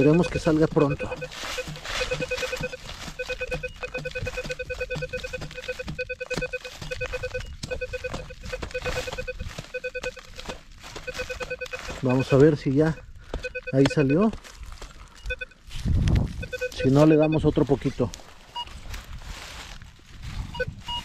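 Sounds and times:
metal detector pulsing beep: 0.0s - 14.4s, 15.2s - 15.6s, 16.4s - 18.8s, 20.5s - 21.0s.

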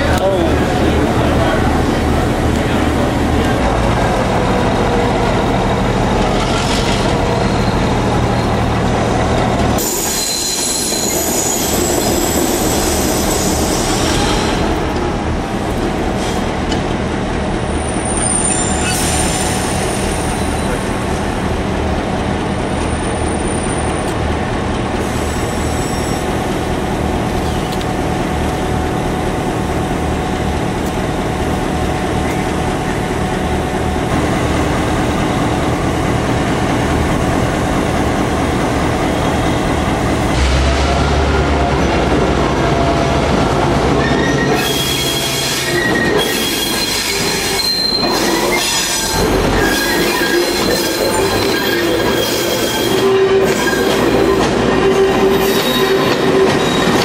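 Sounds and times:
diesel locomotive engine: 0.0s - 57.0s
train wheels squealing and clattering: 6.2s - 8.8s, 9.8s - 14.6s, 17.8s - 20.9s, 22.8s - 24.2s, 25.0s - 26.4s, 44.0s - 57.0s.

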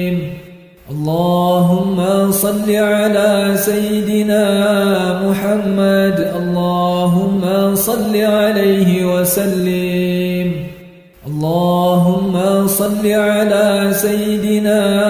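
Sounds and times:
person chanting in long held notes: 0.0s - 15.0s.

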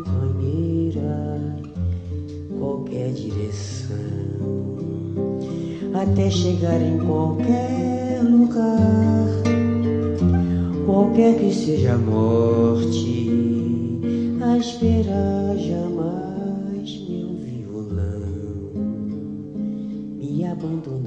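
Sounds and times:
nylon-string acoustic guitar: 0.0s - 21.0s.

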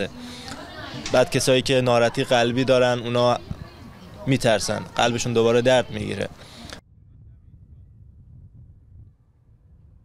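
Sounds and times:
wind rumble on microphone: 3.4s - 4.0s, 6.8s - 10.0s.

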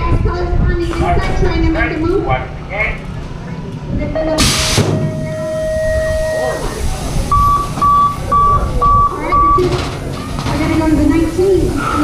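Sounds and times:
voices: 0.0s - 12.0s
short electronic beeps: 7.3s - 9.7s.

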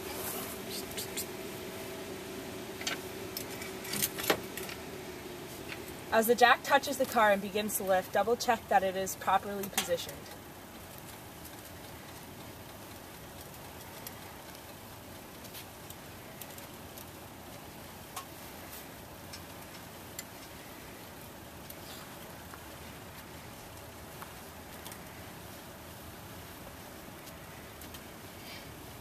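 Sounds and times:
steady low hiss: 0.0s - 29.0s.

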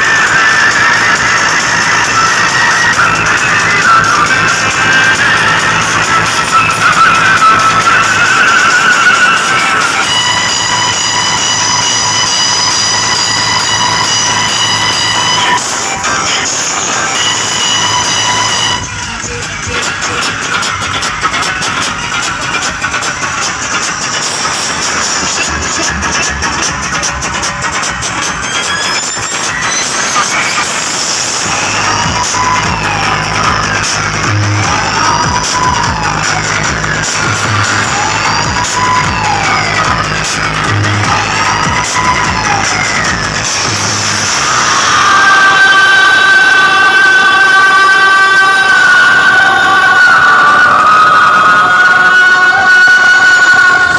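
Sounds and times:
dance music on sound system: 0.0s - 53.9s
siren-like sweeping tones: 0.0s - 53.9s
heavy bass note: 13.0s - 28.5s.

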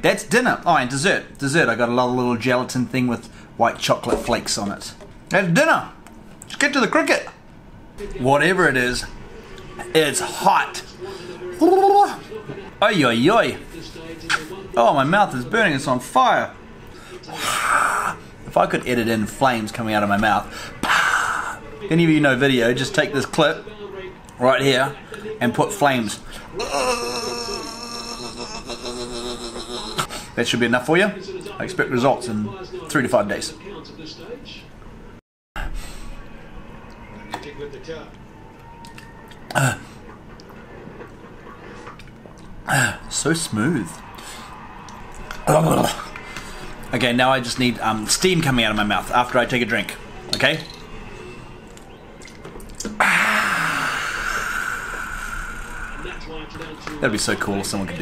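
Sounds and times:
man exhaling loudly: 53.0s - 56.0s.

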